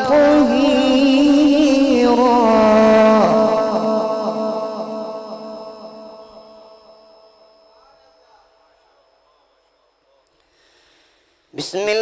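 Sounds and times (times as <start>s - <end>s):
man reciting melodically: 0.0s - 10.2s, 11.5s - 12.0s
echo of voice: 0.0s - 12.0s.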